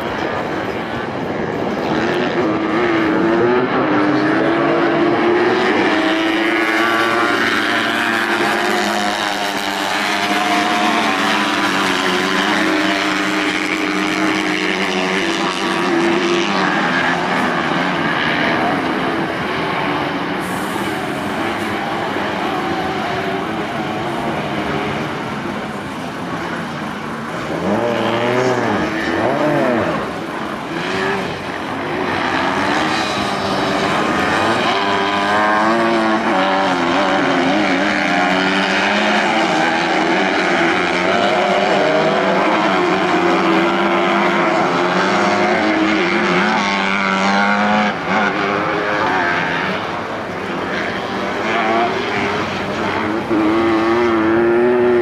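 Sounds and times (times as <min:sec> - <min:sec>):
buggy engines high-revving: 0:00.0 - 0:55.0.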